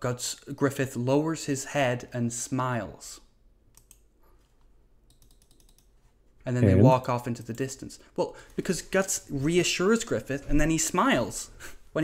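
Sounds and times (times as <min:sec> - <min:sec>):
keyboard typing clicks: 0:03.7 - 0:04.1, 0:05.0 - 0:05.9.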